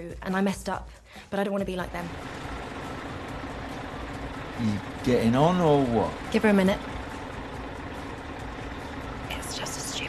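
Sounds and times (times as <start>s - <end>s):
bus engine idling: 1.7s - 10.0s.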